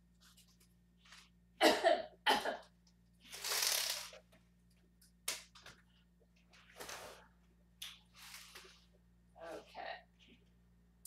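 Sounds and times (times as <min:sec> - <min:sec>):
window blinds rustling: 0:03.2 - 0:04.2, 0:06.6 - 0:07.2, 0:08.1 - 0:08.9.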